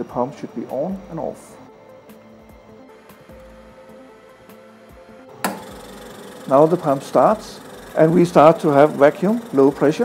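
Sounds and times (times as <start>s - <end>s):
centrifuge rotor humming: 0.0s - 10.0s
vacuum pump running: 0.0s - 10.0s.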